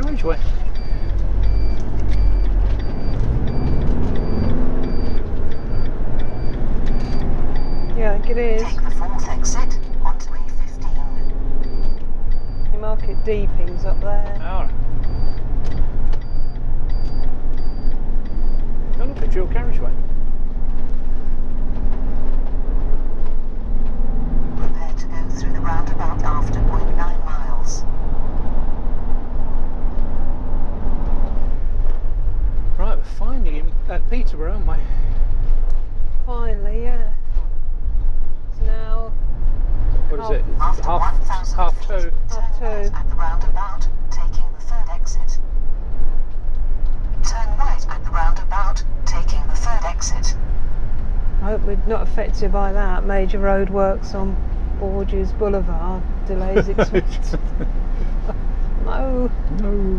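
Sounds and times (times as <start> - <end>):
voices talking: 0.0 - 15.2, 19.0 - 20.0, 24.6 - 27.8, 40.1 - 45.4, 51.4 - 59.9
vehicle engine and tyres rumbling: 0.0 - 59.9.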